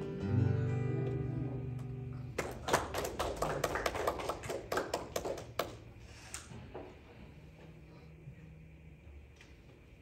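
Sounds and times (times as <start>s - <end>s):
acoustic guitar chord: 0.0s - 2.3s
people clapping: 1.0s - 6.1s.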